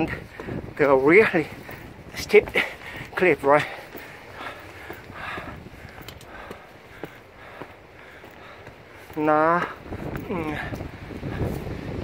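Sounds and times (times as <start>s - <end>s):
footsteps on rock: 0.0s - 11.8s.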